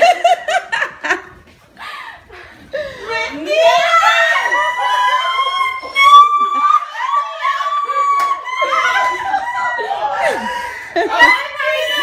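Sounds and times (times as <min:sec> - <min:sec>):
women screaming with excitement: 0:03.6 - 0:12.0.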